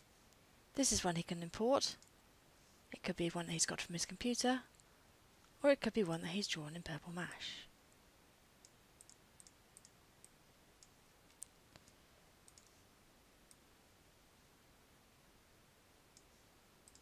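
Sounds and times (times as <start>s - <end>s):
computer mouse clicks: 2.0s - 2.2s, 8.6s - 12.8s, 16.1s - 17.0s.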